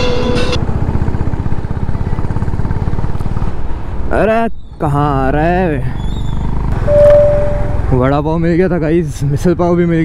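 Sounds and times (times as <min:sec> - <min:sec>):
motorcycle engine rumbling: 0:04.6 - 0:10.0
beep tone: 0:06.8 - 0:07.9.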